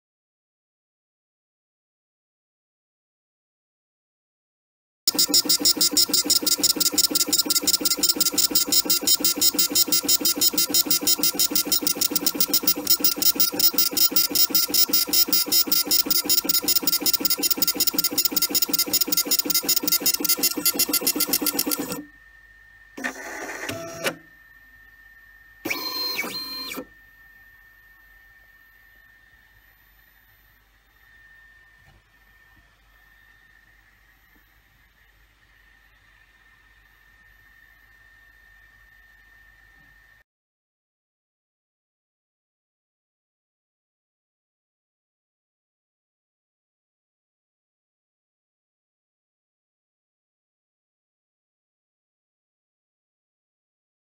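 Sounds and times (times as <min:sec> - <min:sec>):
short machine sounds: 0:05.1 - 0:22.2, 0:22.9 - 0:34.4
faint steady whine: 0:05.1 - 0:40.2
laser engraver pulsing buzz: 0:05.1 - 0:40.2.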